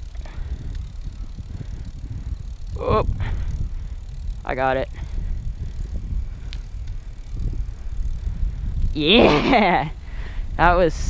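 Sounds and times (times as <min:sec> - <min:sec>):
bike tyres rolling on asphalt: 0:00.0 - 0:11.0
wind on microphone: 0:00.0 - 0:11.0.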